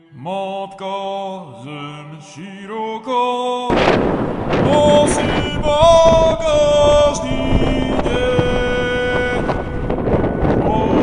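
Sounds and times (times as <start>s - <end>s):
wind rumbling on microphone: 3.7s - 11.0s.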